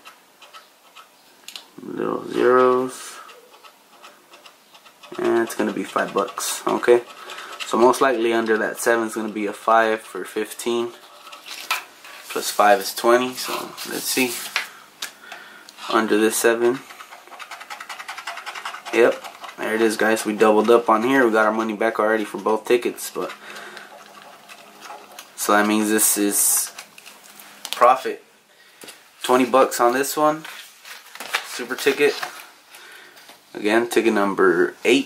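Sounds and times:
key scratching lottery ticket: 0:00.0 - 0:01.1, 0:02.1 - 0:14.5, 0:15.9 - 0:27.0.

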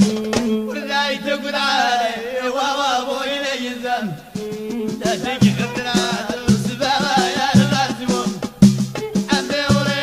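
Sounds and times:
drums: 0:00.0 - 0:00.8, 0:04.2 - 0:10.0.

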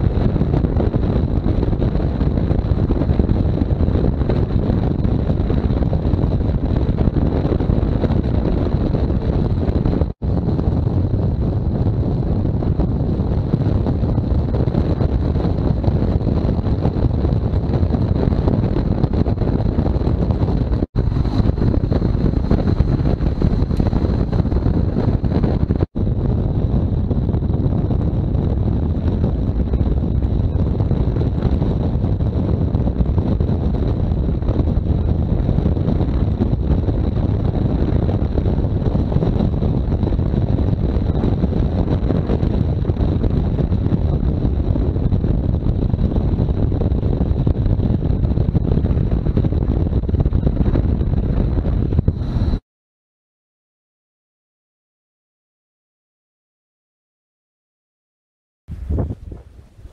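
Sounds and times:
motorcycle running: 0:00.0 - 0:33.3
wind rush on microphone: 0:00.0 - 0:52.6, 0:58.7 - 0:59.9.

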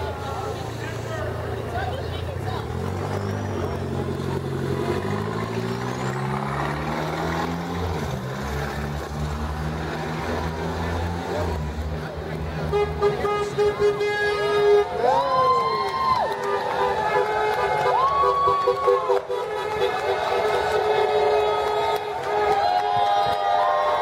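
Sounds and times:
vehicle engine revving: 0:01.5 - 0:14.0.

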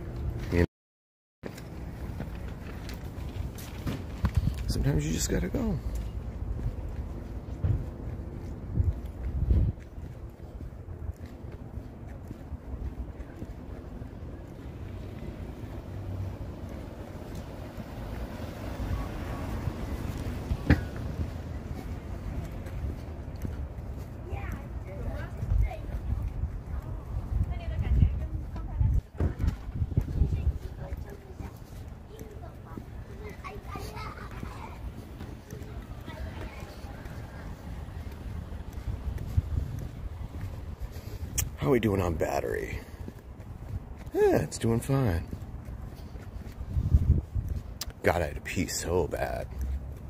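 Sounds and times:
wind rumble on microphone: 0:01.8 - 0:05.0, 0:06.1 - 0:32.1, 0:35.8 - 0:41.6, 0:42.8 - 0:44.3, 0:45.2 - 0:47.8
faint indistinct voices: 0:18.7 - 0:41.4.

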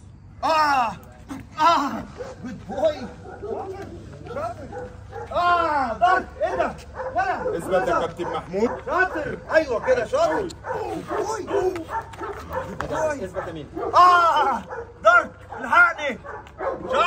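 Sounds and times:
dog barking and yipping: 0:02.0 - 0:17.0.

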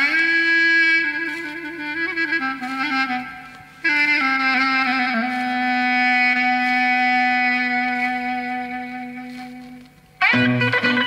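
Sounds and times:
clarinet holding long note: 0:00.0 - 0:11.0.

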